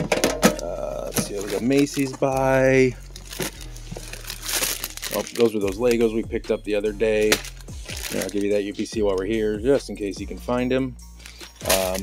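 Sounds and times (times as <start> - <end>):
cardboard boxes rustling: 0.0 - 5.6
plastic packaging crinkling: 0.0 - 6.0, 7.1 - 8.8, 11.2 - 12.0.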